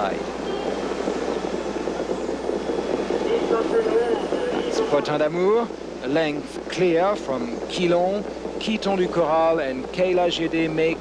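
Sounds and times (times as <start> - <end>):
crowd rumble: 0.0 - 11.0.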